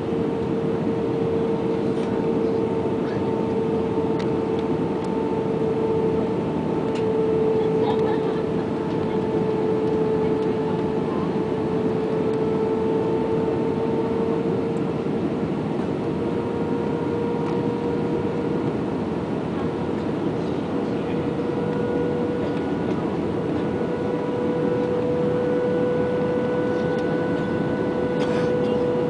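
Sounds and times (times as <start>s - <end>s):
aircraft engines roaring: 0.0s - 29.0s
steady hum: 0.0s - 29.0s.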